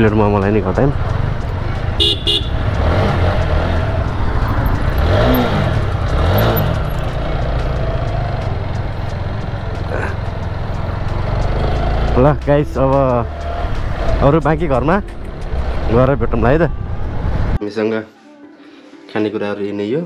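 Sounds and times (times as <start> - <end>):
motorcycle engine running: 0.0 - 17.3
vehicle horn toots: 2.0 - 3.0.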